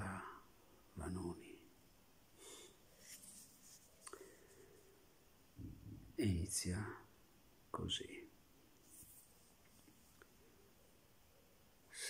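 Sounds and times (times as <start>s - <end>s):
faint soft breaths: 2.3s - 5.8s.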